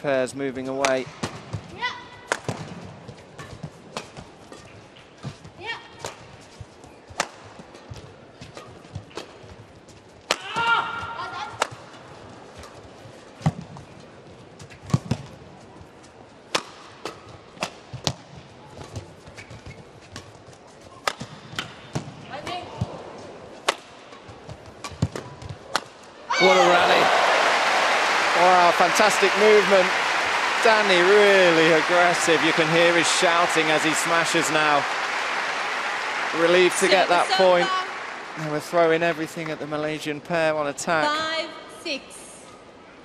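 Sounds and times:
low hum of arena crowd: 6.2s - 43.0s
player shouting: 26.3s - 38.5s.

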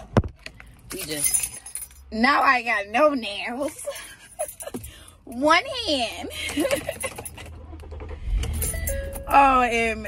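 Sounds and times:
car cabin rumble: 5.4s - 10.0s.

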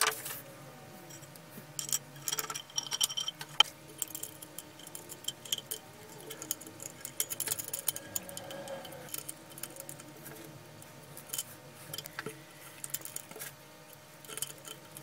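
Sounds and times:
small metal parts clicking and clinking: 1.1s - 15.0s.

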